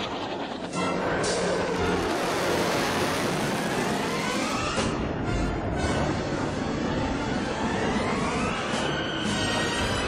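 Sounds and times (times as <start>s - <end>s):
jet aircraft flying past: 0.0s - 7.1s.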